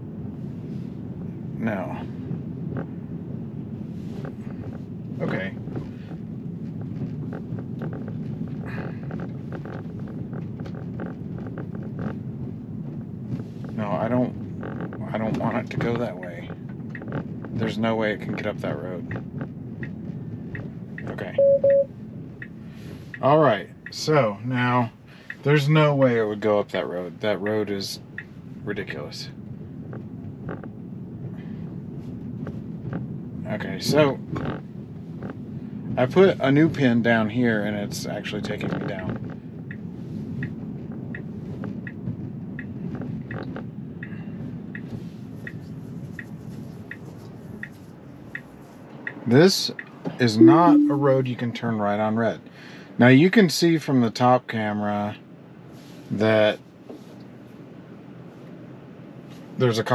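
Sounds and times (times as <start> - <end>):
tyre and wind noise of car: 0.0 - 50.4, 51.1 - 59.9
faint ticks: 38.6 - 49.2
man murmuring: 50.4 - 51.2.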